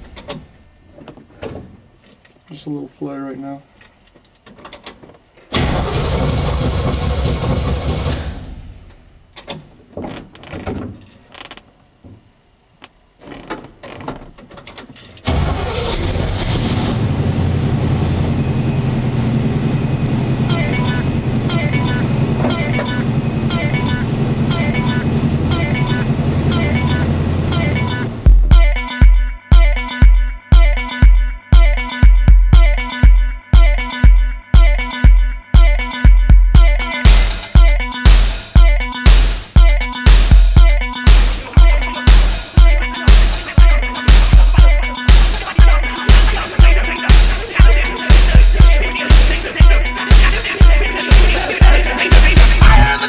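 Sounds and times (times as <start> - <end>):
engine starting and running: 4.8 - 9.6, 14.6 - 28.4, 41.1 - 53.0.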